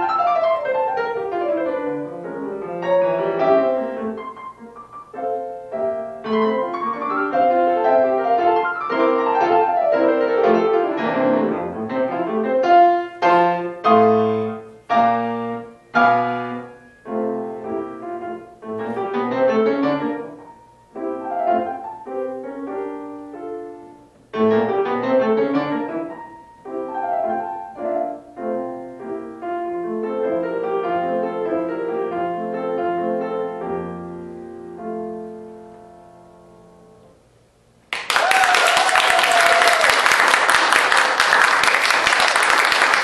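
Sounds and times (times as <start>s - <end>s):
solo grand piano classical music: 0.0s - 37.8s.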